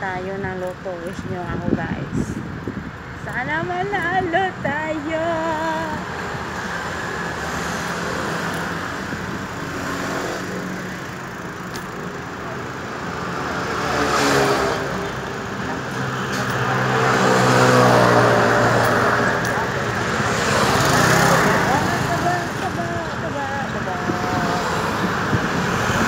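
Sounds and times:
steady road noise: 0.0 - 26.0
vehicle engine passing: 5.6 - 26.0.

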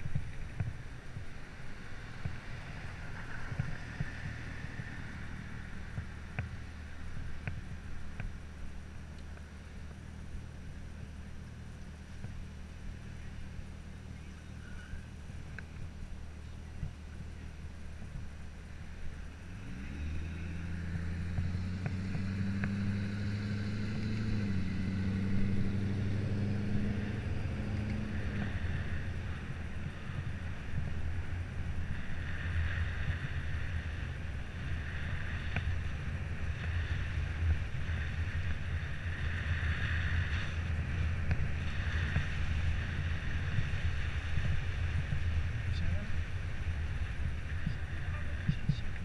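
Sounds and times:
motorcycle engine accelerating: 0.0 - 49.0
wind rumble on microphone: 0.0 - 49.0.

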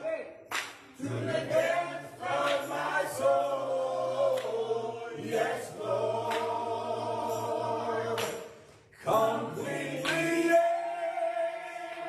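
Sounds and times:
men singing gospel song: 1.0 - 12.0.

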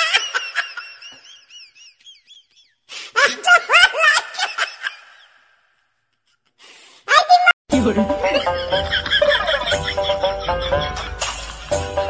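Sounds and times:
person snickering laugh: 8.4 - 11.5.

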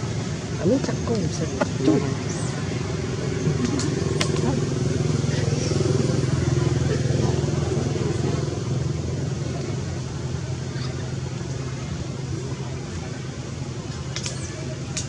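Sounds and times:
motor engine running: 0.0 - 15.0.

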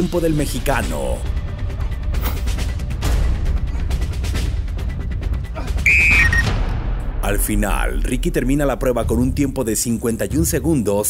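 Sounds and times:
dramatic music with heavy drums: 0.0 - 9.8
short high electronic beep: 5.8 - 6.5.

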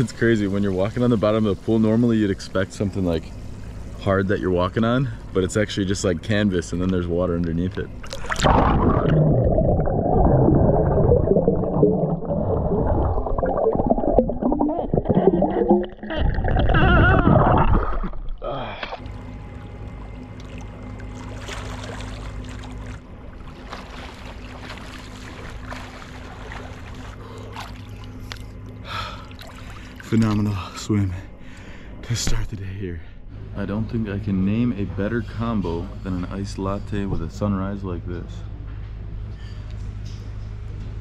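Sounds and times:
steady low hum: 0.0 - 41.0
underwater water rushing and bubbling: 7.9 - 18.4
water splashing: 8.0 - 19.0, 20.4 - 28.5.

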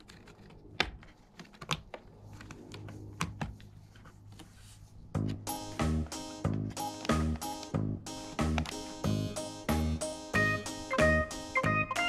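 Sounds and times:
cat claws scraping cardboard: 0.0 - 5.4.

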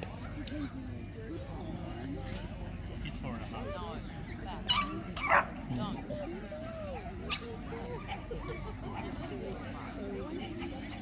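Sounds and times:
background chatter: 0.0 - 11.0
dog barking: 4.7 - 5.5.

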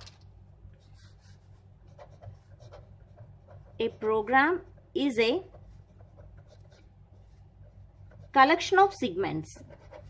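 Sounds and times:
pen scratching on paper: 0.8 - 10.0.

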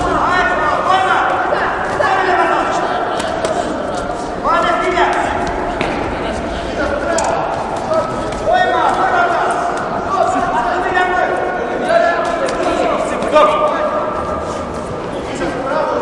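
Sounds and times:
men calling out: 0.0 - 13.9.

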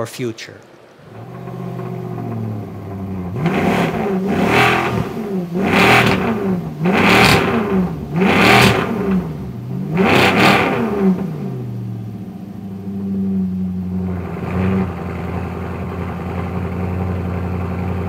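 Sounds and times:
sports car engine revving: 1.1 - 18.0.

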